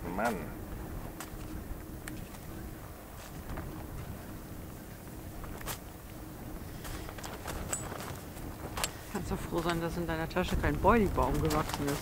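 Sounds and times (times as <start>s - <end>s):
man speaking: 0.0s - 0.6s
low steady rumble: 0.0s - 12.0s.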